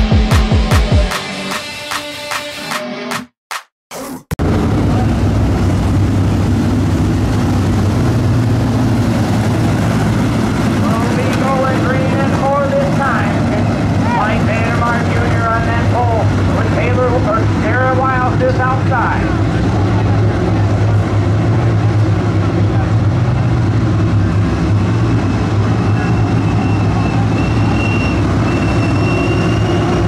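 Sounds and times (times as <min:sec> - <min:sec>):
race car engines droning: 0:04.4 - 0:30.0.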